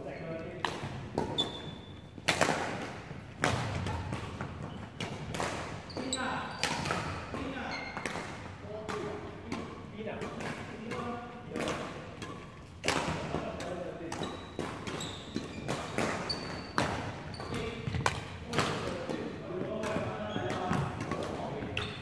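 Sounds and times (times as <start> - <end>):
racket hitting shuttlecock: 0.6 - 22.0.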